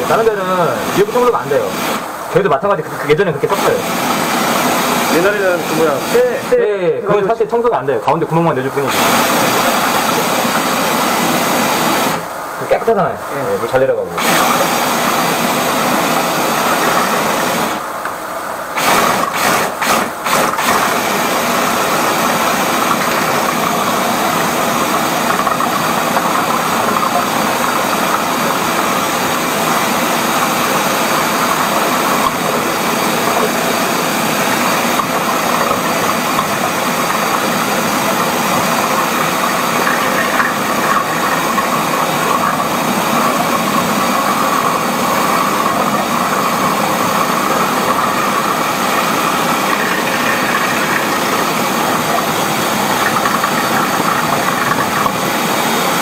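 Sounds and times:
drain-cleaning machine running: 0.0s - 56.0s.

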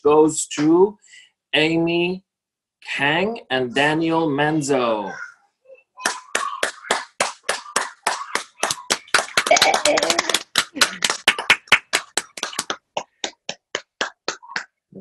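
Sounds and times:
hand clapping: 6.0s - 14.8s.

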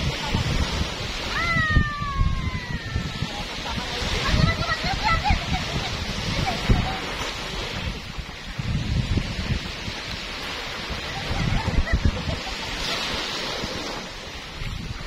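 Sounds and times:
small waves breaking on shore: 0.0s - 15.0s
wind buffeting microphone: 0.0s - 15.0s.

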